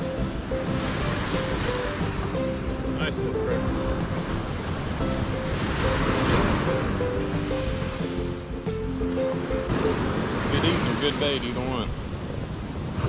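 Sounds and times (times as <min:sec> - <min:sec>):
background music held notes: 0:00.0 - 0:11.0
ocean surf: 0:00.0 - 0:13.0.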